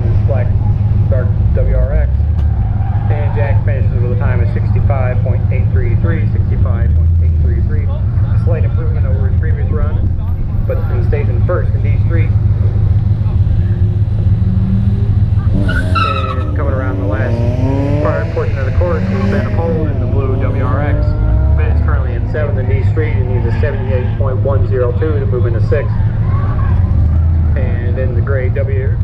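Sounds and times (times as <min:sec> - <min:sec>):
car engine idling: 0:00.0 - 0:29.0
tires squealing: 0:00.0 - 0:29.0.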